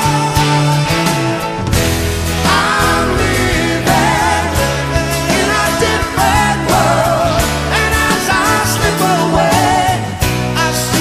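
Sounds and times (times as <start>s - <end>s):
bass holding low notes: 0.0s - 11.0s
drums keeping steady beat: 0.0s - 11.0s
hard rock band playing: 0.0s - 11.0s.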